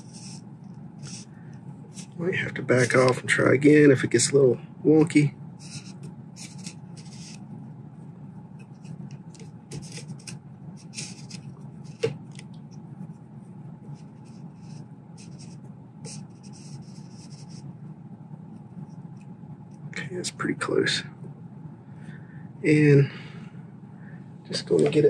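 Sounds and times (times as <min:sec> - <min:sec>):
scraping and rubbing strokes: 0:00.0 - 0:01.3, 0:05.6 - 0:07.4, 0:08.6 - 0:13.2, 0:13.8 - 0:17.7
steady low hum: 0:00.0 - 0:25.0.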